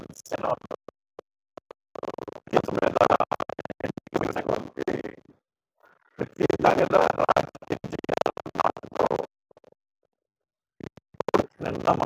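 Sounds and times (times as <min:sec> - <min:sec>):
man speaking into a microphone: 0:00.0 - 0:00.6, 0:02.5 - 0:03.2, 0:04.1 - 0:05.1, 0:06.2 - 0:07.9, 0:11.4 - 0:12.0.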